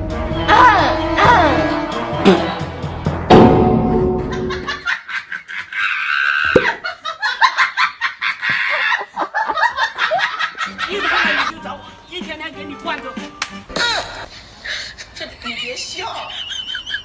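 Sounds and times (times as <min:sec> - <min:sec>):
background music: 0:00.0 - 0:04.8, 0:10.6 - 0:14.3
people laughing: 0:04.3 - 0:11.5, 0:13.7 - 0:17.0.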